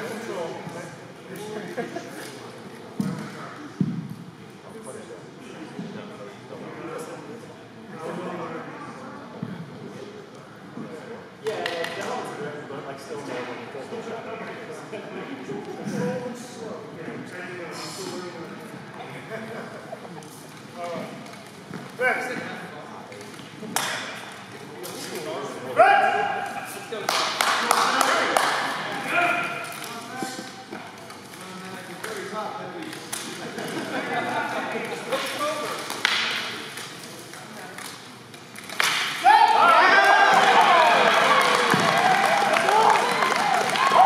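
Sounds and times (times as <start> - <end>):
sharp shouts: 25.8 - 26.4
crowd shouting and cheering: 39.2 - 44.0.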